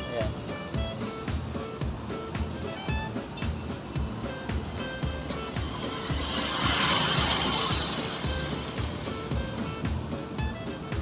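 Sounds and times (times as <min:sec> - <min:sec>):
background music with steady beat: 0:00.0 - 0:11.0
motorcycle passing: 0:02.2 - 0:10.0.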